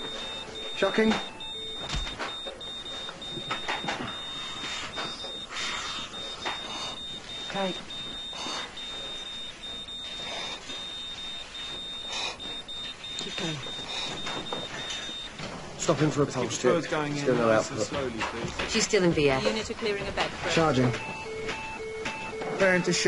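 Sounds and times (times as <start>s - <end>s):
electronic alarm beeping: 0.0s - 23.0s.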